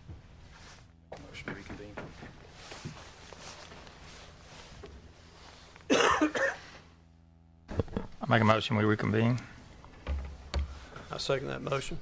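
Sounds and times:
person coughing: 5.9 - 6.8.

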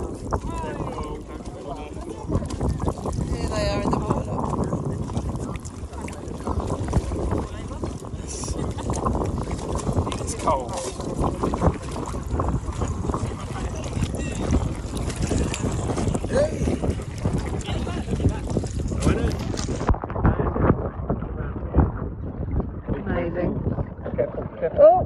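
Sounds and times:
sea water sloshing: 0.0 - 25.0
wind buffeting microphone: 0.0 - 25.0.

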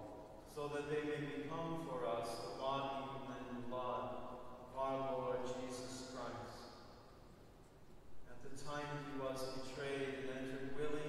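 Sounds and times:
priest chanting a prayer: 0.0 - 6.6, 8.3 - 11.0.

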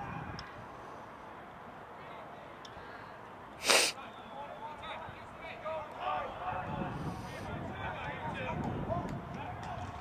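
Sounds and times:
sneeze: 3.6 - 4.0.

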